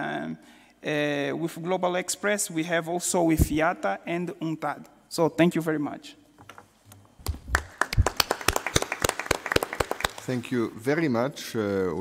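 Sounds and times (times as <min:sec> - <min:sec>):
audience applause: 0:07.5 - 0:10.3.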